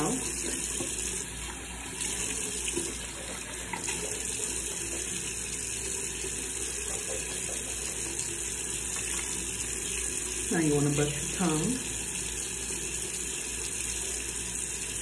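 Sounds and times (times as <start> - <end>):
tap running into sink: 0.0 - 5.2.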